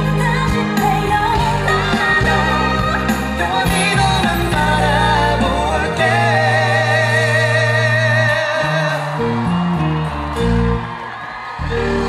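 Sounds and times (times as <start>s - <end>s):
lead singer singing: 0.0s - 9.9s
backing singers: 0.0s - 12.0s
live band playing: 0.0s - 12.0s.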